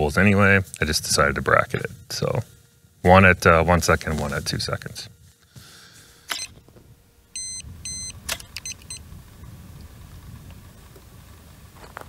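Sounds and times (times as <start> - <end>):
short high beeps: 7.4 - 9.0
camera shutter clicks: 8.2 - 8.9.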